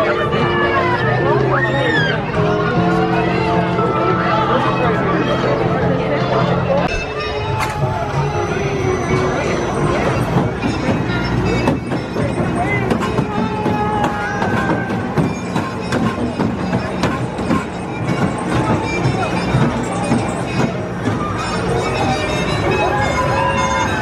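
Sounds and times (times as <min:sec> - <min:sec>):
music: 0:00.0 - 0:24.0
people's voices: 0:00.0 - 0:24.0
roller coaster rolling on track: 0:00.0 - 0:24.0.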